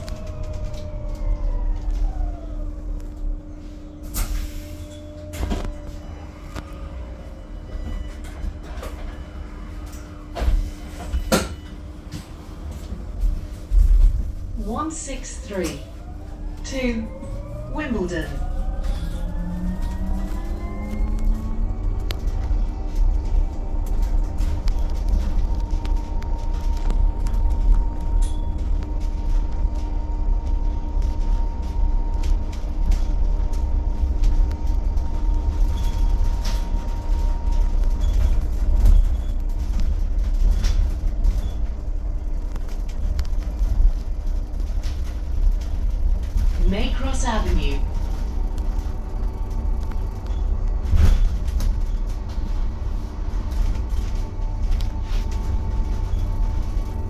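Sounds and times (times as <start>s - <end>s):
road and tyre rumble: 15.8s - 57.0s.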